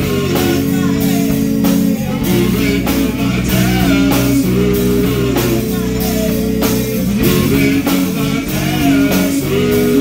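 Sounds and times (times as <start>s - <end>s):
bass guitar: 0.0s - 10.0s
electric guitars: 0.0s - 10.0s
steady drum beat: 0.0s - 10.0s.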